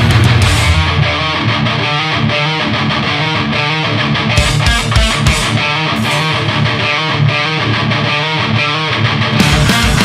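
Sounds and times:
sharp hits: 0:00.0 - 0:01.8, 0:04.4 - 0:07.4
bass guitar: 0:00.0 - 0:10.0
distorted electric guitar riff: 0:00.0 - 0:10.0.

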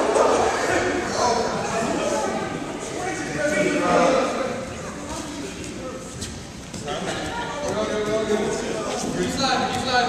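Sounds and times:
students talking and calling out: 0:00.0 - 0:10.0.

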